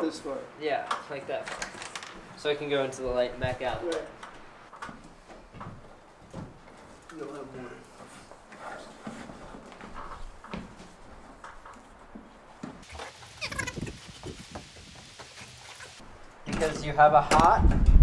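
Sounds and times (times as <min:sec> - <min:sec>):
plastic cable rustling and scraping: 0:01.4 - 0:02.3.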